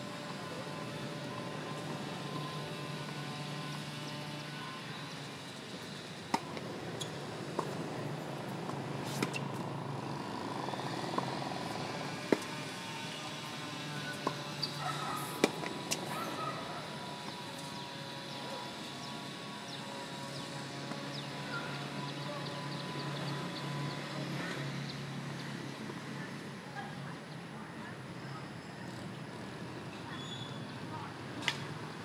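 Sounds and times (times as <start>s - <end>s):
tennis balls hitting hard court: 6.3s - 9.6s, 11.0s - 12.7s, 14.0s - 16.1s.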